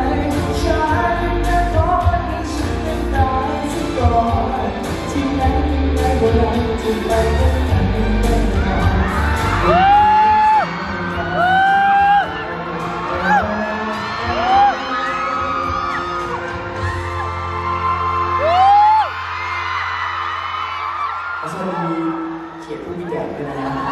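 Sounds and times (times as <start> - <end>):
band playing pop song: 0.0 - 23.9.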